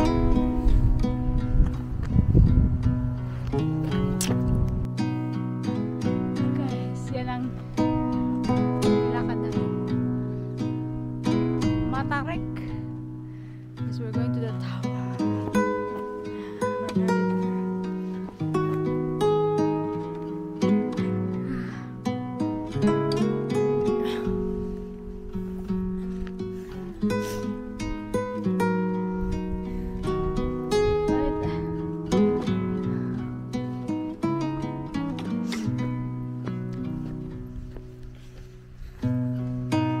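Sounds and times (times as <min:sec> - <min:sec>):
instrumental music with plucked notes: 0:00.0 - 0:38.1, 0:38.8 - 0:40.0.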